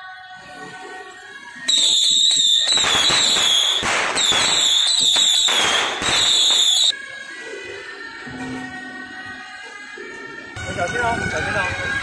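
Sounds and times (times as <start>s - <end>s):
firecrackers crackling: 1.7s - 7.0s.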